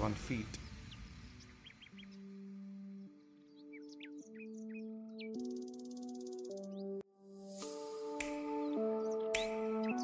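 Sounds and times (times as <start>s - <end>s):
soft background music chords: 0.0s - 10.0s.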